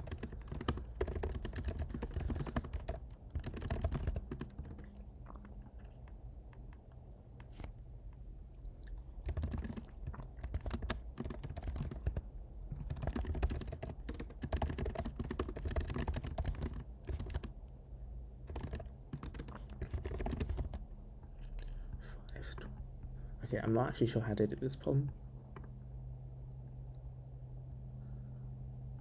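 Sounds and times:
fast keyboard typing: 0:00.0 - 0:05.0, 0:09.2 - 0:17.6, 0:18.4 - 0:20.8.

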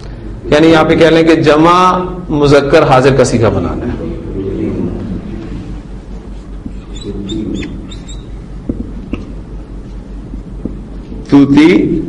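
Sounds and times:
steady low hum: 0:00.0 - 0:12.0
marker squeaking on whiteboard: 0:06.3 - 0:08.5
marker ticks writing: 0:06.4 - 0:09.3.

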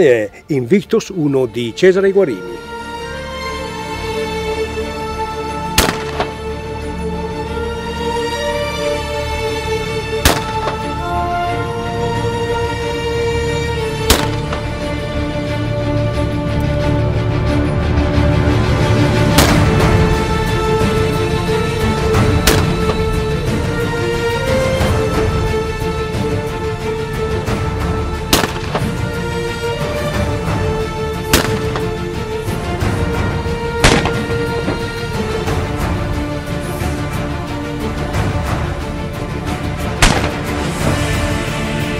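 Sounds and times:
background music with held notes: 0:00.0 - 0:41.9
shotgun shot: 0:05.8 - 0:06.5, 0:10.2 - 0:10.9, 0:14.1 - 0:14.8, 0:22.4 - 0:23.0, 0:28.3 - 0:29.0, 0:31.3 - 0:32.0, 0:33.8 - 0:34.8, 0:40.0 - 0:40.7.

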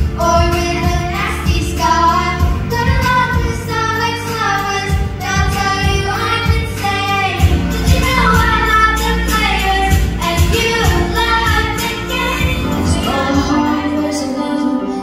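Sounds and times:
child singing: 0:00.0 - 0:15.0
instrumental accompaniment: 0:00.0 - 0:15.0.

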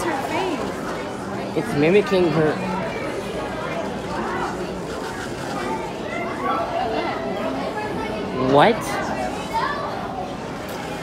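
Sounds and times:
chatter of children and adults: 0:00.0 - 0:11.0.

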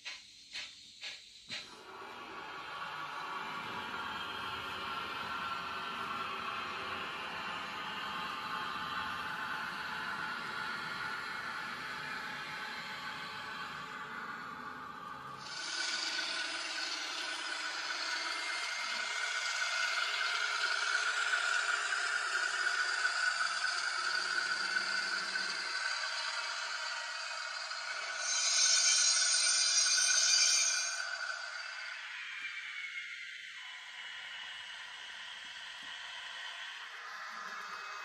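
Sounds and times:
model train motors whirring: 0:00.5 - 0:38.0.

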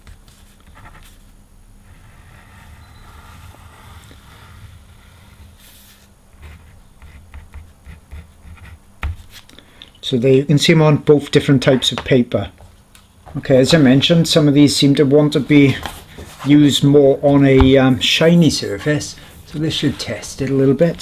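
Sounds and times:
pen scratching on paper: 0:01.8 - 0:08.8.

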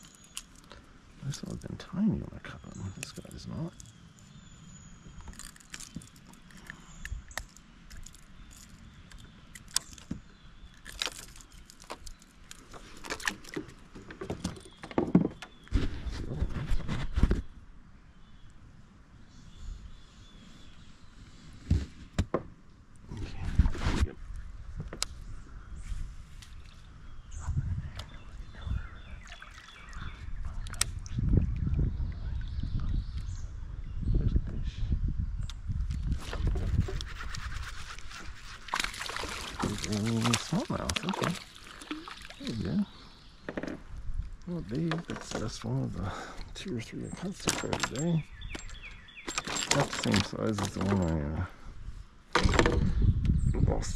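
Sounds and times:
water sloshing against hull: 0:09.6 - 0:17.4, 0:27.8 - 0:31.6, 0:36.1 - 0:44.0, 0:44.6 - 0:51.1
knocks and bumps in plastic kayak: 0:13.0 - 0:17.4, 0:52.4 - 0:53.0.

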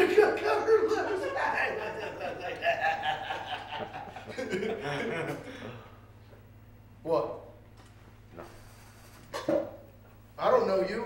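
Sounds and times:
man laughing: 0:00.0 - 0:05.9.

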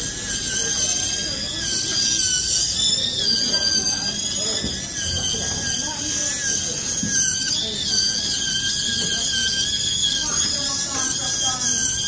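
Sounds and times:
bur grinding acrylic: 0:00.0 - 0:12.0
dental handpiece whining: 0:00.0 - 0:12.0.

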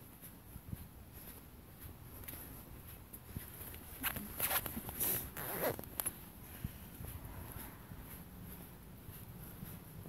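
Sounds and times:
clothing rustling on microphone: 0:00.0 - 0:10.0.

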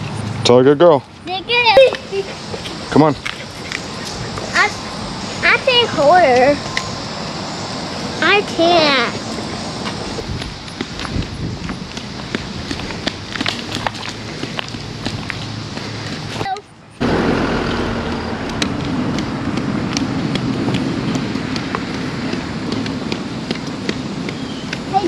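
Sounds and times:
footsteps on sidewalk: 0:00.0 - 0:25.0
footsteps on gravel: 0:01.1 - 0:07.2, 0:07.9 - 0:16.6, 0:18.0 - 0:25.0.

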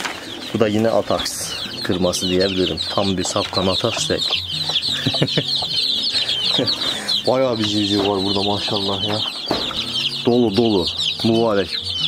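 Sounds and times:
chicks peeping: 0:00.0 - 0:12.0
hen clucking: 0:00.0 - 0:12.0.

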